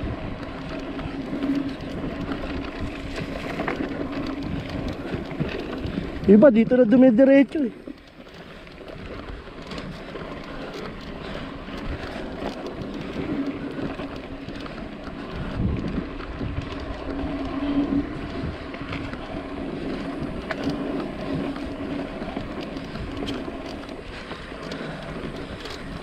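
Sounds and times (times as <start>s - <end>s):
bike clicks and rattles: 0.0s - 26.0s
bike tyres on dirt: 0.0s - 26.0s
wind noise on camera: 0.0s - 26.0s.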